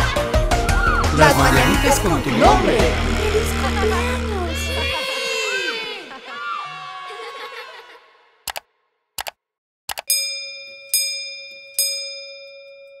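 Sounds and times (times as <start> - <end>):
sung jingle: 1.1 - 4.6
quick double clicks: 9.2 - 10.1
small bell chiming: 10.1 - 13.0.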